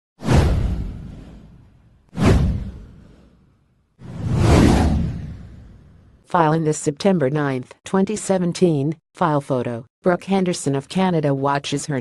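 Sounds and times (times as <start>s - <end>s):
whoosh sound effects: 2.2s - 6.1s.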